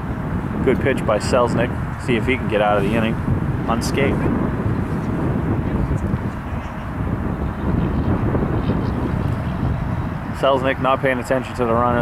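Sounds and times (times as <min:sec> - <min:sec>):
low rushing background noise: 0:00.0 - 0:12.0.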